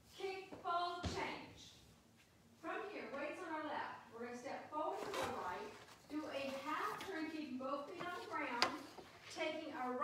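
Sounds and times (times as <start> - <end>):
woman speaking: 0.1 - 1.8, 2.6 - 10.0.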